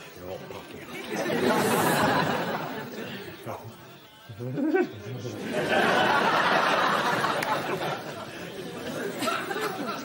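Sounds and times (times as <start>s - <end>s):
studio audience laughter: 0.9s - 3.3s, 5.3s - 10.0s.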